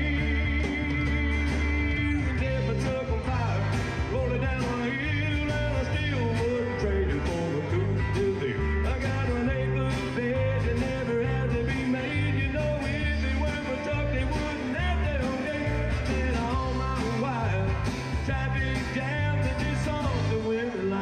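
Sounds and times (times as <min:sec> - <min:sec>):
bass: 0:00.0 - 0:21.0
drum kit: 0:00.0 - 0:21.0
guitars: 0:00.0 - 0:21.0.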